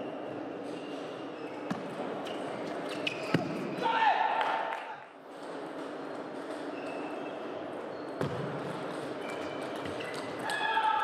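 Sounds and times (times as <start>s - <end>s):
loud shout: 3.8s - 4.8s, 10.4s - 11.0s.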